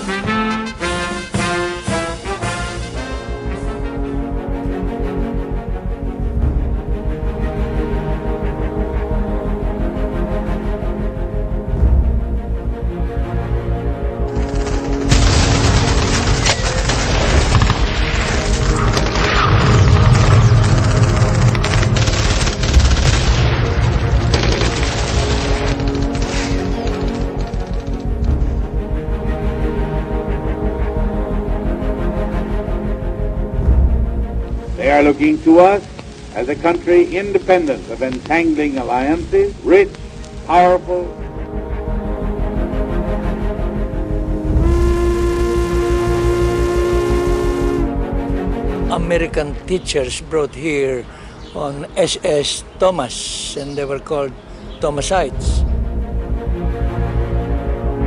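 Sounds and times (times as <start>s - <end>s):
music holding long notes: 0.0s - 58.0s
rapid gunfire: 14.3s - 27.8s
heavy low booms: 28.0s - 35.6s
steam whistle blast: 44.5s - 48.0s.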